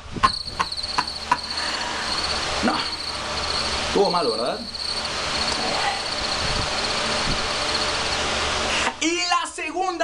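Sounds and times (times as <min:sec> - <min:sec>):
crickets chirping: 0:00.0 - 0:08.6
hiss: 0:00.6 - 0:08.9.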